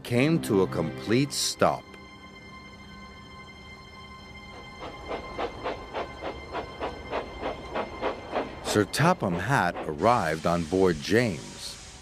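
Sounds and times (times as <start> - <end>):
steam locomotive chuffing: 4.5 - 12.0.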